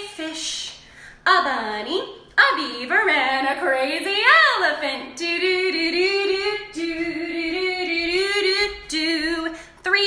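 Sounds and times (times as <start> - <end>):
woman singing unaccompanied: 1.3 - 10.0.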